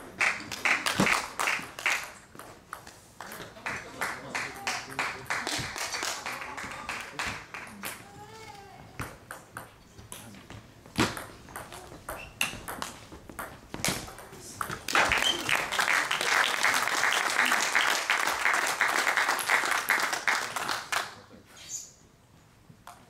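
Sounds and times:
spectators clapping: 0.0 - 2.3, 3.2 - 8.0, 14.7 - 21.2.

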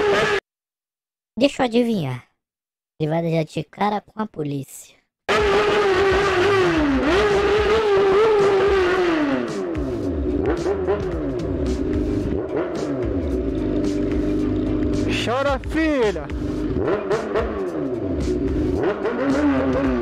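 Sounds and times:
motorcycle engine running: 5.3 - 20.0.

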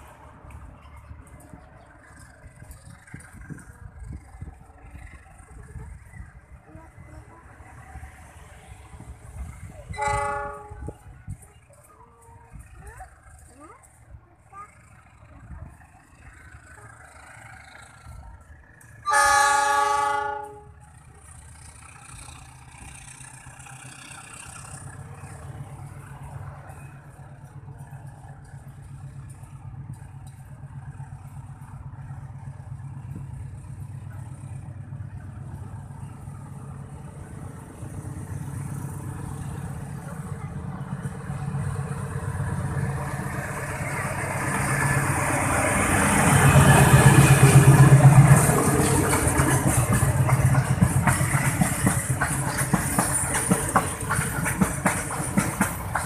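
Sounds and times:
diesel locomotive engine hum: 0.0 - 56.0
steel wheels rolling on rails: 0.0 - 56.0.

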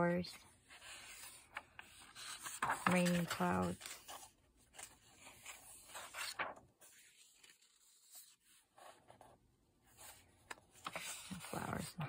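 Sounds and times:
paper page turning: 0.7 - 9.3, 9.9 - 11.9.

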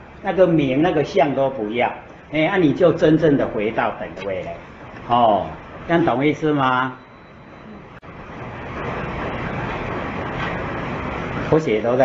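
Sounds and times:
steady rushing noise: 8.0 - 12.0.

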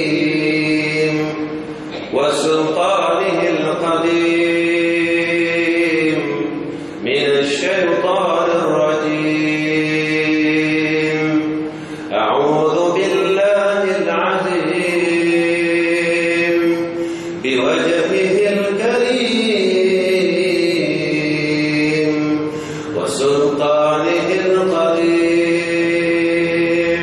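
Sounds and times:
man chanting melodically: 0.0 - 27.0.

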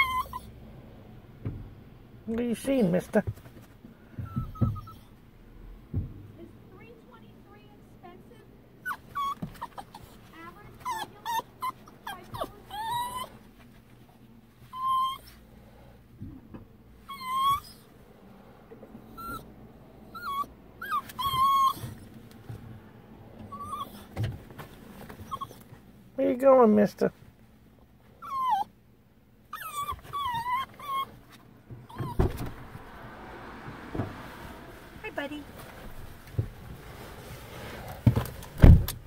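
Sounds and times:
small dog whimpering: 0.0 - 0.5, 4.2 - 5.2, 8.8 - 13.5, 14.6 - 15.4, 17.0 - 17.9, 19.1 - 19.5, 20.1 - 22.1, 23.5 - 24.2, 25.2 - 25.7, 28.2 - 28.8, 29.5 - 32.5.

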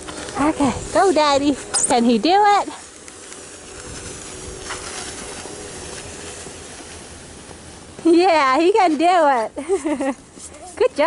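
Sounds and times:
plastic sled sliding over snow: 0.0 - 11.0.

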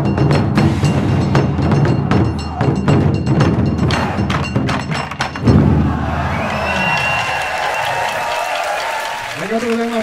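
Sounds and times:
taiko drums fast roll: 0.1 - 9.3
loud drum boom: 5.4 - 6.8
audience cheering: 5.5 - 10.0.

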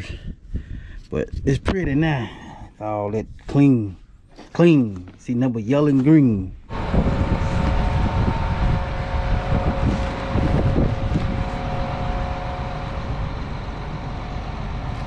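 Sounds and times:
wind on microphone: 6.6 - 14.9
tractor engine whining: 6.7 - 15.0.

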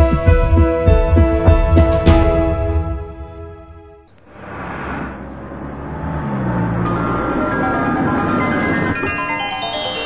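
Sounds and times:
film score music: 0.0 - 10.0
car engines and tyres on dirt: 4.1 - 9.8.

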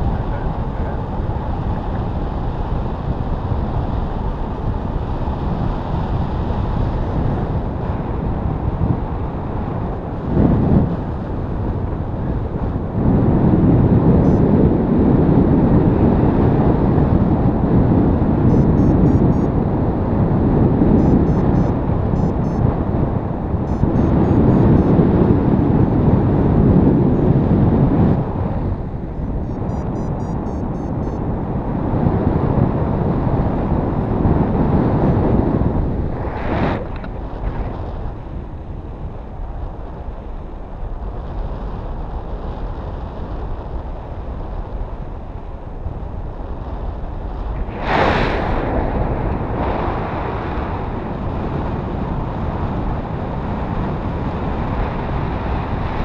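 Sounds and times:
wind rushing over microphone: 0.0 - 56.0.

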